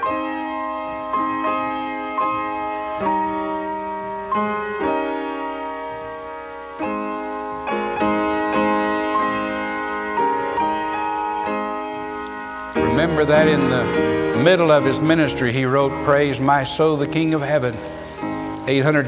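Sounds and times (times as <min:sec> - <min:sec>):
solo piano playing hymn: 0:00.0 - 0:19.0.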